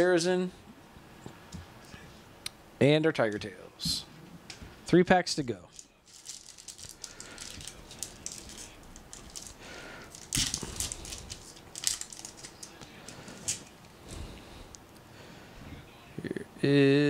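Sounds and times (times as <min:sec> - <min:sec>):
foil wrapper crinkling: 0:05.7 - 0:13.9.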